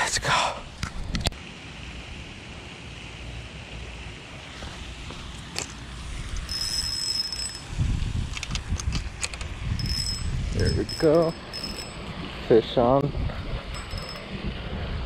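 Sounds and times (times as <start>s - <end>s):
wind on microphone: 6.0s - 11.3s, 13.0s - 15.0s
high steady tone: 6.4s - 7.9s, 9.7s - 12.8s, 13.7s - 14.4s.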